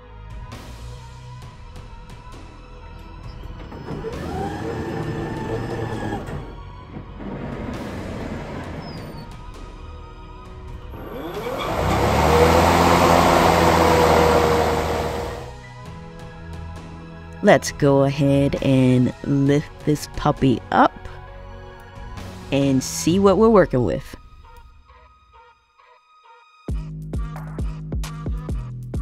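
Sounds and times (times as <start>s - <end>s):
background music: 0.0s - 29.0s
electric mower motor whine: 3.4s - 9.2s, 10.7s - 15.6s
mower blade whirring whoosh: 10.8s - 15.6s.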